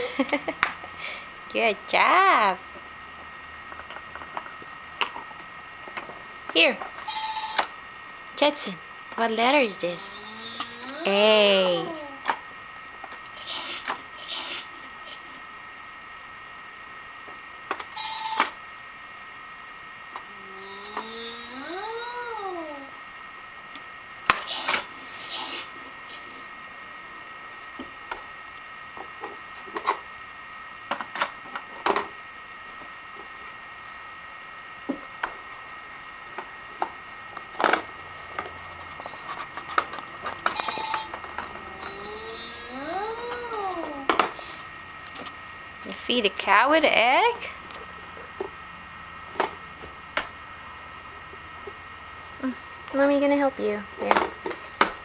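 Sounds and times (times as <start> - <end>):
electronic animal call: 7.0 - 7.7, 9.9 - 12.2, 13.3 - 15.4, 17.9 - 18.6, 20.3 - 22.9, 24.4 - 26.4, 40.4 - 44.1
short electronic tone: 41.8 - 42.8.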